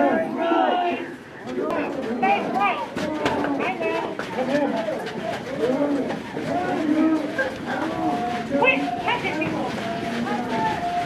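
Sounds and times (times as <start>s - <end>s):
overlapping cries of voices: 0.0s - 11.0s.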